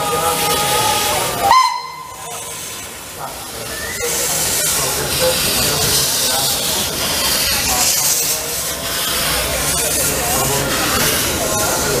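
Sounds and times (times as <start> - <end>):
steam whistle blast: 0.0 - 2.4
steam hissing: 0.0 - 12.0.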